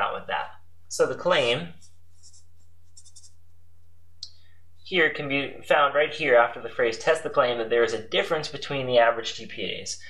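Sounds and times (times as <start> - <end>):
steady low hum: 0.0 - 10.0
marker writing on paper: 1.8 - 3.4.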